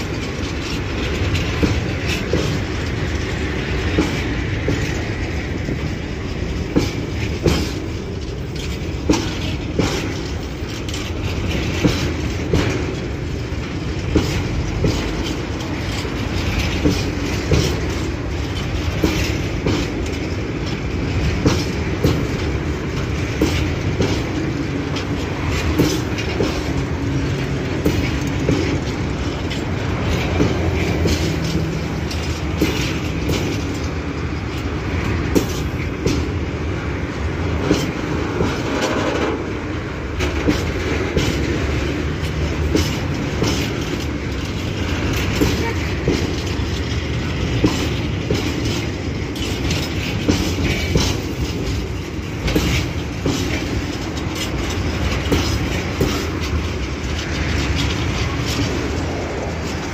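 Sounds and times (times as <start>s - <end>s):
train wheels rumbling on rail: 0.0s - 59.9s
wheel clicks and knocks: 0.0s - 59.9s.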